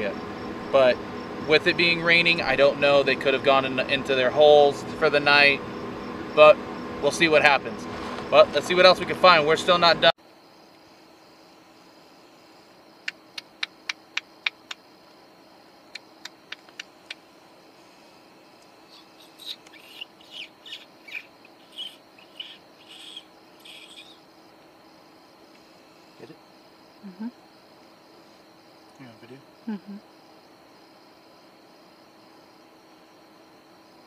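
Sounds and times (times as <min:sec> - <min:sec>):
sharp clicks: 0:15.9 - 0:17.2
owl raspy calls: 0:18.6 - 0:24.3.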